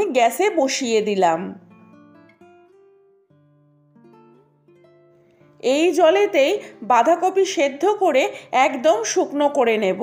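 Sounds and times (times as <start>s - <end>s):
quiet instrumental music: 0.5s - 10.0s.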